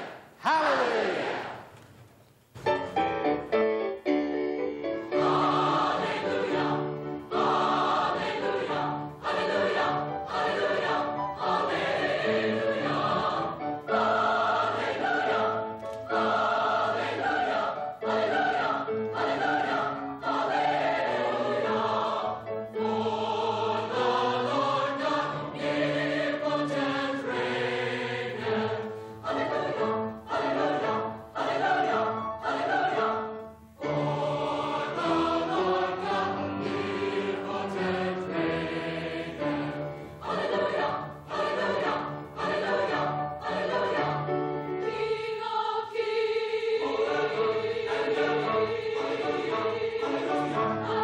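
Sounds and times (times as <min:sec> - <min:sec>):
mixed choir singing: 0:00.9 - 0:01.7, 0:04.6 - 0:51.0.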